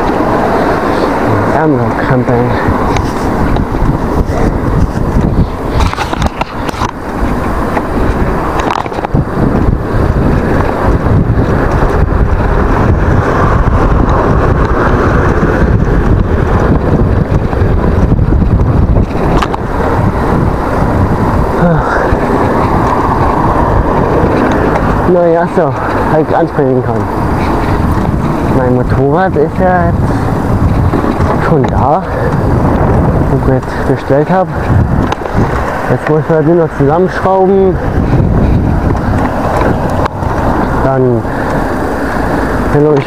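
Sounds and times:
bike tyres rolling on pavement: 0:00.0 - 0:43.0
wind on microphone: 0:00.0 - 0:43.0.

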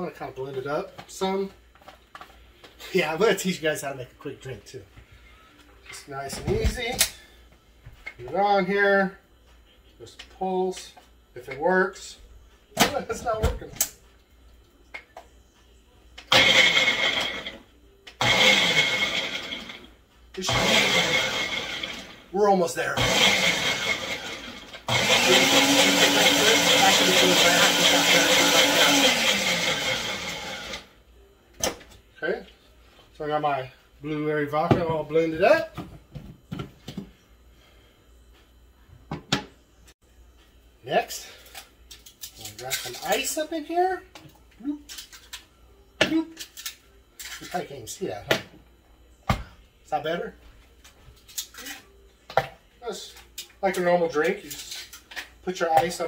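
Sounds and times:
blender motor running: 0:16.3 - 0:17.6, 0:18.2 - 0:22.2, 0:23.0 - 0:30.9
blender click: 0:24.9 - 0:30.4.

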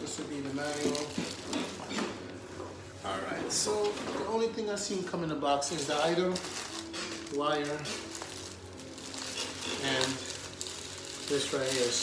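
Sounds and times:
plastic bag rustling: 0:00.0 - 0:02.1, 0:03.0 - 0:12.0.

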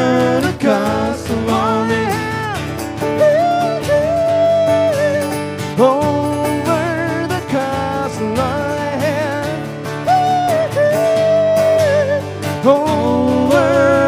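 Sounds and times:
acoustic guitars strummed: 0:00.0 - 0:14.0
man singing with vibrato: 0:00.0 - 0:14.0.

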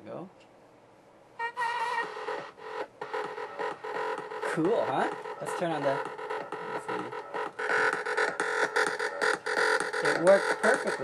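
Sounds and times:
music from small speaker: 0:01.4 - 0:11.0.

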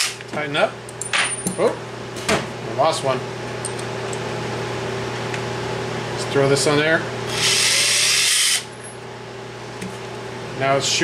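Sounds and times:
cordless drill grinding metal: 0:07.3 - 0:08.7.

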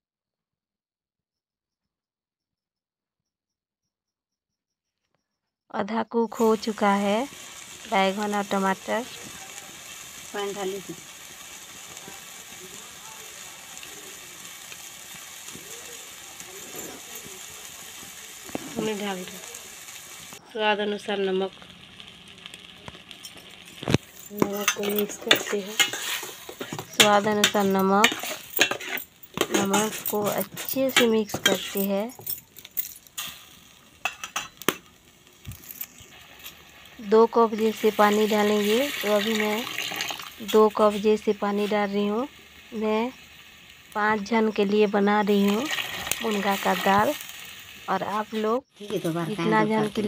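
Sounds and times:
vegetables sizzling in a pan: 0:06.1 - 0:50.0
spatula scraping a pan: 0:23.3 - 0:32.0.

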